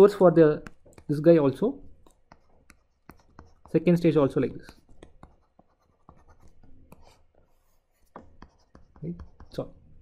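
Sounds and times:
stylus tapping on tablet screen: 0.4 - 9.7.

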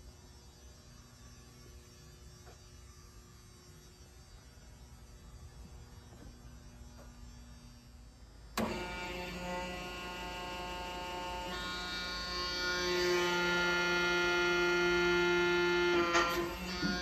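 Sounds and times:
faint shop hum: 0.0 - 17.0
hydraulic pump motor whining: 8.5 - 17.0.

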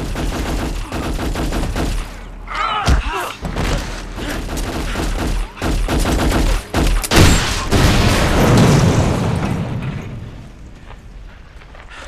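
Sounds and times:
submachine gun firing bursts: 0.0 - 2.3, 4.2 - 7.5.

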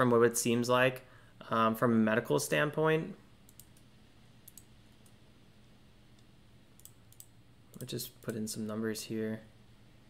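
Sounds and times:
computer mouse clicks: 3.5 - 5.2, 6.2 - 8.4.

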